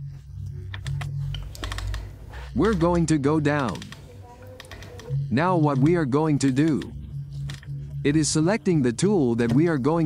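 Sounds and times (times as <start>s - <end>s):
low background music: 0.0s - 10.0s
mouse scroll wheel clicks: 0.7s - 2.9s, 4.6s - 5.1s.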